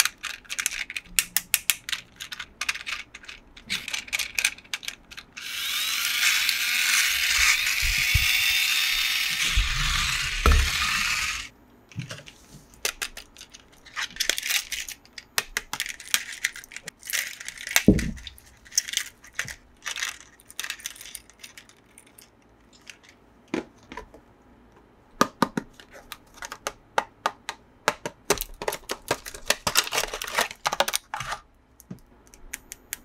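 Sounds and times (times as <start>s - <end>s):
toy car motor whirring: 5.3s - 11.5s.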